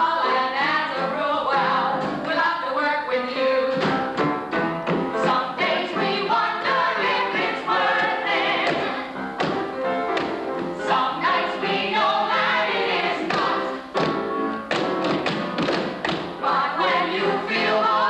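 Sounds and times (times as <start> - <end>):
men and women singing show tune: 5.2 - 9.2, 10.8 - 13.9, 16.4 - 18.0
sharp taps or thumps: 8.6 - 10.7, 13.3 - 16.3.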